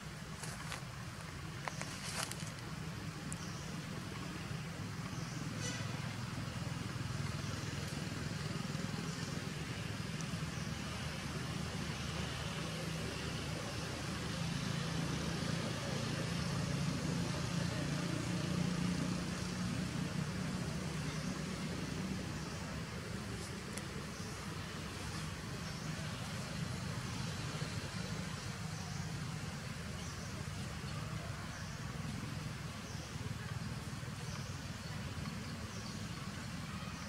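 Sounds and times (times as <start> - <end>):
background hiss: 0.0 - 37.0.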